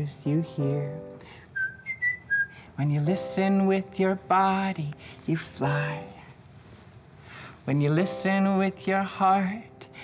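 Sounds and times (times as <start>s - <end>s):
high whistled notes: 1.5s - 2.7s.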